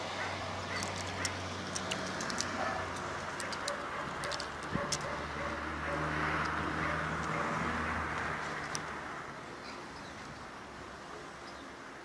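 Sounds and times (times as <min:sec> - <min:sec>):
cat claws scratching tree bark: 0:00.4 - 0:09.0.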